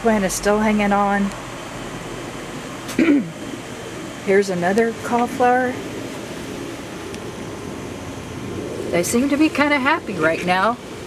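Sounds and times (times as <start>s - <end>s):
background hiss: 0.0s - 11.0s
woman clearing throat: 2.9s - 3.4s.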